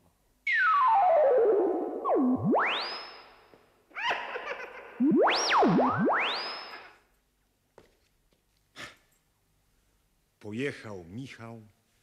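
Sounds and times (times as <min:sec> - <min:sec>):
swooping synthesizer whistle tone: 0:00.5 - 0:03.4, 0:05.0 - 0:07.0.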